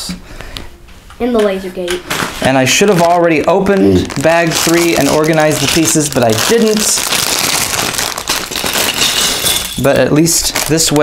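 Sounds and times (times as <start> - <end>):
plastic bag crinkling: 2.1 - 11.0.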